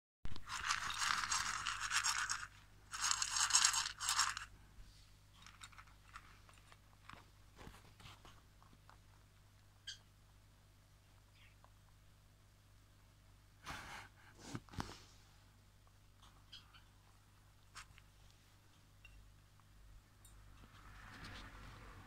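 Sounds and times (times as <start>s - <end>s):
rustling and scraping handling: 0.4s - 9.7s, 14.3s - 15.5s.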